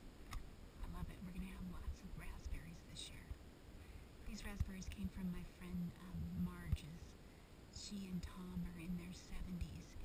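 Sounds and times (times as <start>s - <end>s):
woman speaking softly: 0.8s - 3.4s, 4.2s - 10.0s.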